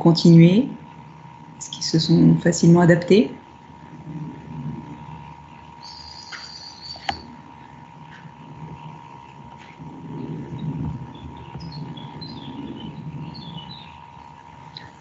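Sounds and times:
faint low murmur: 0.0 - 15.0
steady electrical hum: 0.0 - 15.0
faint high chirps: 5.8 - 7.3.

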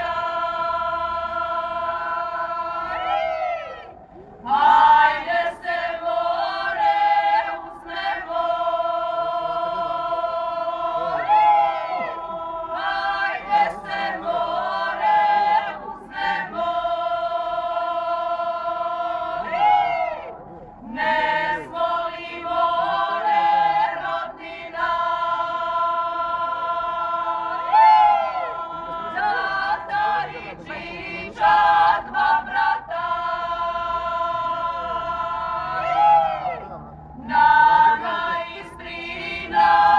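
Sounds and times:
choir singing: 0.0 - 39.9.

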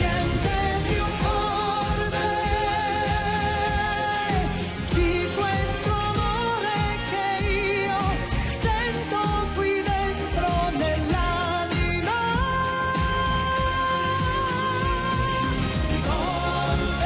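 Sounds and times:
band with steady beat: 0.0 - 17.0
woman singing into a microphone: 0.0 - 17.0.

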